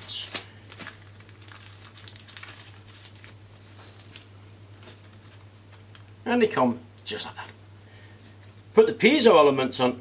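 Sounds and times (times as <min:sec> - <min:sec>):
paper packet rustling: 0:00.0 - 0:06.1
steady low hum: 0:00.0 - 0:10.0.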